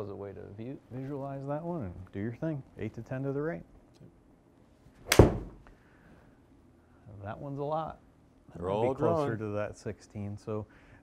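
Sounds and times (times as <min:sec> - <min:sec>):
golf iron striking ball: 0:05.0 - 0:05.6.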